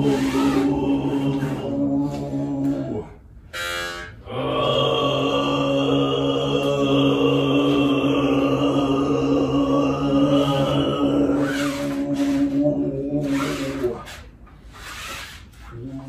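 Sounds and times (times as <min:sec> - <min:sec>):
overtone singing drone: 0:00.0 - 0:14.2.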